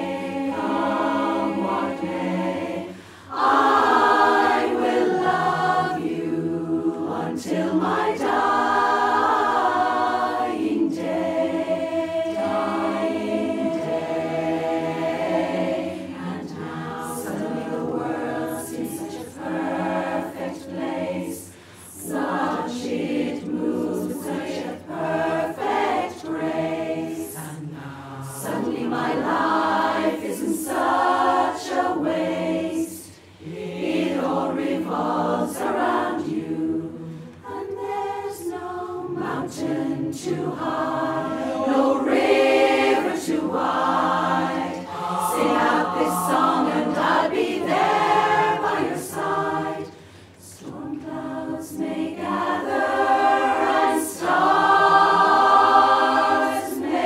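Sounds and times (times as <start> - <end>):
women's chorus singing a cappella: 0.0 - 57.0
singers breathing: 2.9 - 3.4, 21.5 - 22.0, 37.0 - 37.4, 49.8 - 50.5.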